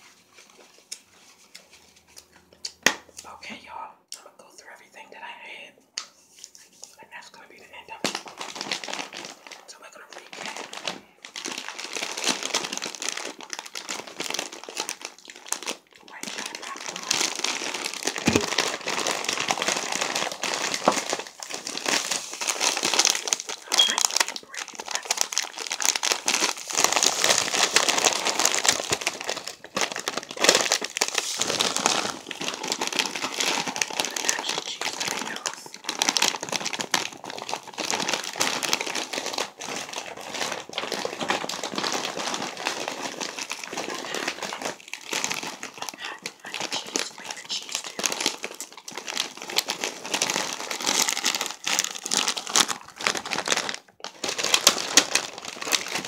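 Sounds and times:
plastic snack bags crinkling: 6.4s - 56.0s.

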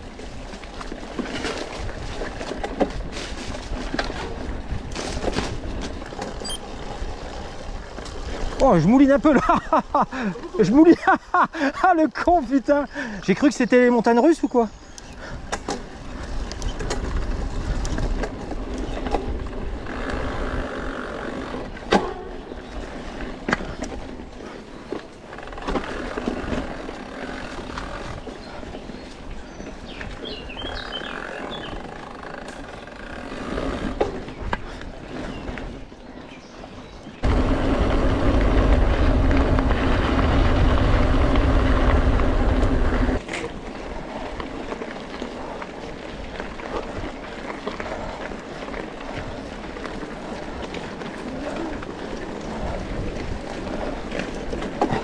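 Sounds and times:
bike rattling: 0.0s - 55.0s
bike tyres rolling on gravel: 0.0s - 55.0s.

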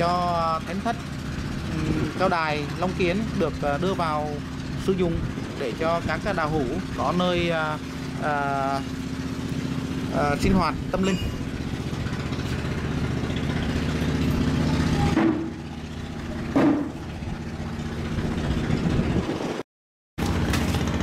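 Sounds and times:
motor engine running: 0.0s - 19.6s, 20.2s - 21.0s.

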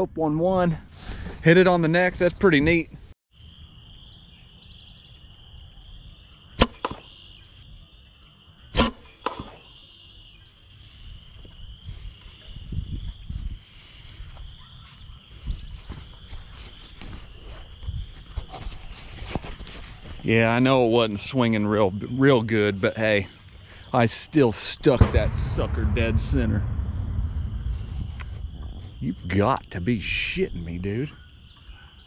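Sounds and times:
arrow shots cracking: 6.6s - 7.1s, 8.8s - 9.7s, 25.0s - 28.9s.

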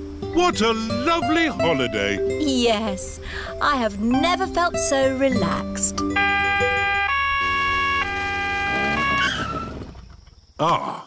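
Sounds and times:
cartoon two-tone police siren: 6.1s - 9.8s.

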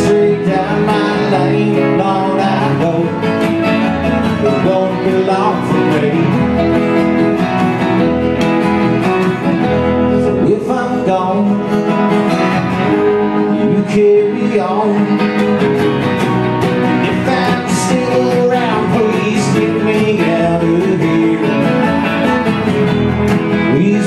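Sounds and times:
live band playing: 0.0s - 24.0s.

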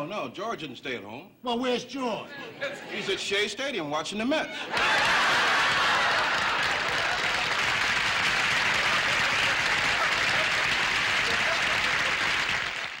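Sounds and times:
studio audience applauding: 4.7s - 13.0s.

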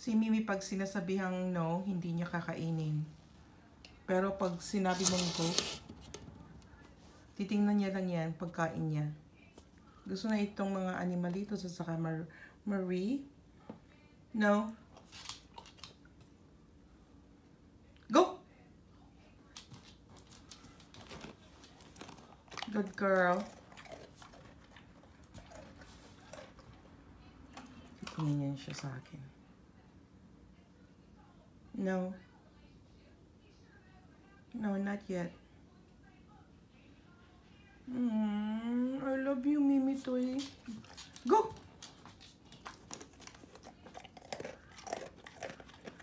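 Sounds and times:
dog crunching and chewing: 14.9s - 16.4s, 19.6s - 29.1s, 39.9s - 46.0s.

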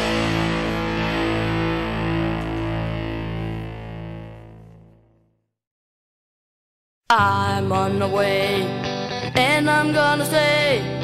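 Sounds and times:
distorted electric guitar chord: 0.0s - 5.3s.

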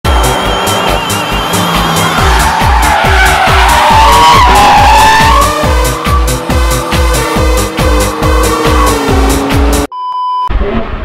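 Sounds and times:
car tyres squealing: 0.1s - 9.9s
electronic music with kick drum: 0.1s - 9.9s.

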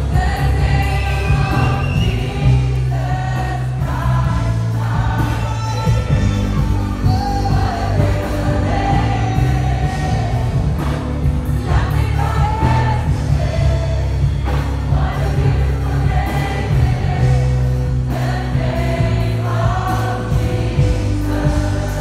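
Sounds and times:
band with steady bass: 0.0s - 22.0s
many voices singing together: 0.0s - 22.0s.

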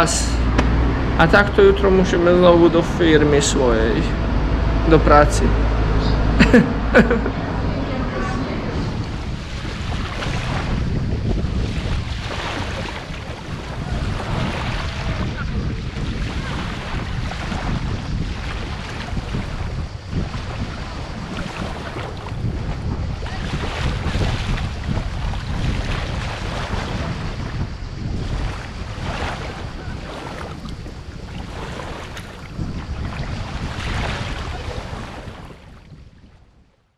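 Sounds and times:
sea waves washing: 0.0s - 36.6s
wind buffeting microphone: 0.0s - 36.9s.

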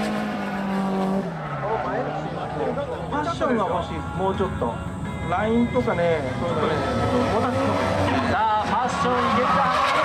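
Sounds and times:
car engine revving: 0.0s - 3.1s, 6.2s - 10.0s
event commentary: 1.4s - 10.0s.

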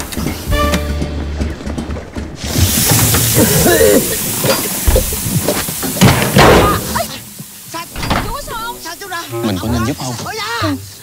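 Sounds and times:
hiss of smoke and steam: 2.4s - 11.0s.

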